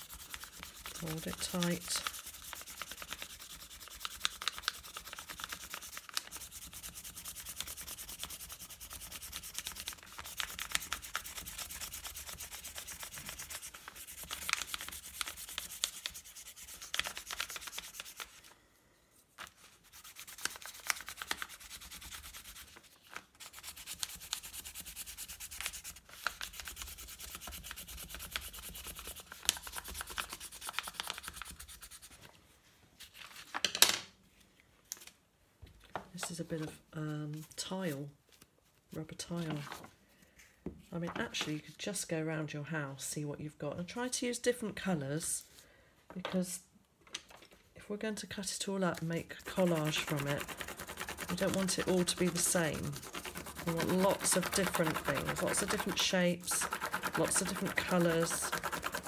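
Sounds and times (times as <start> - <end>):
pencil rasping on paper: 0.0 - 18.2, 49.4 - 59.0.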